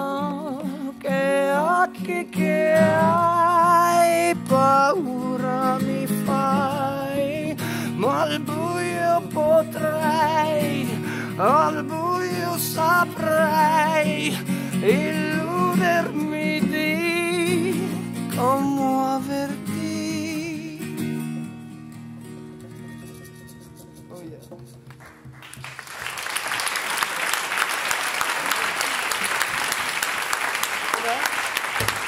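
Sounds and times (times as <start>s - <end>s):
man singing: 0.0s - 21.3s
strummed acoustic guitar: 0.0s - 25.3s
audience applause: 24.9s - 32.0s.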